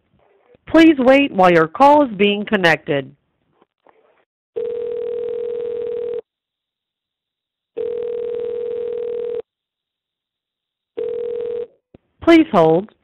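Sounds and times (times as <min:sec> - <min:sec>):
telephone ringback tone: 0:04.6 - 0:06.2, 0:07.8 - 0:09.4, 0:11.0 - 0:11.7.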